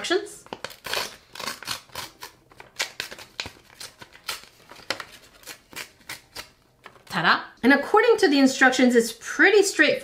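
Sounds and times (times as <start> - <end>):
paper leaflet rustling: 2.1 - 7.1.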